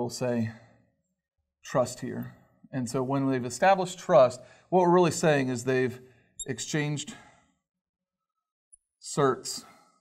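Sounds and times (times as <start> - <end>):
man speaking: 0.0 - 0.5, 1.7 - 7.1.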